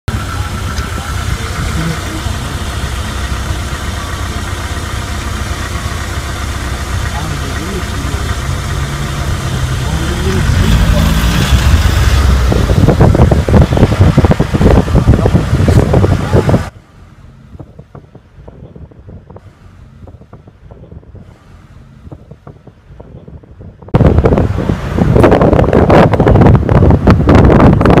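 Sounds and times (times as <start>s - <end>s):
wind buffeting microphone: 0.1s - 28.0s.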